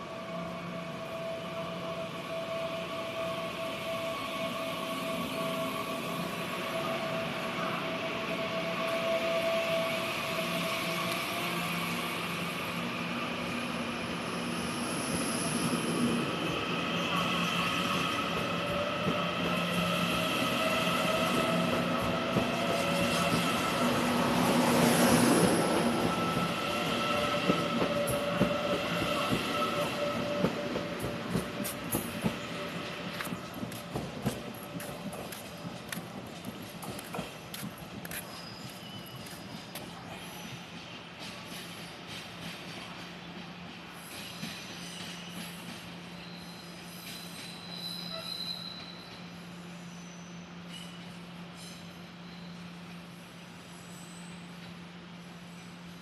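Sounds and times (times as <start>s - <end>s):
train rolling noise: 0.0s - 56.0s
train whining tones: 0.0s - 56.0s
wheel squeal: 38.1s - 40.6s, 46.2s - 51.0s.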